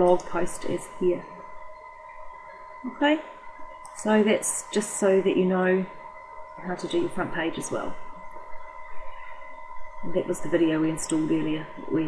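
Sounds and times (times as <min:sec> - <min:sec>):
faint steady whine: 0:00.0 - 0:12.0
low background noise: 0:00.0 - 0:12.0.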